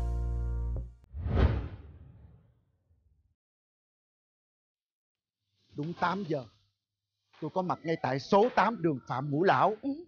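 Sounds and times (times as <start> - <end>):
whoosh sound effect: 1.1 - 2.4.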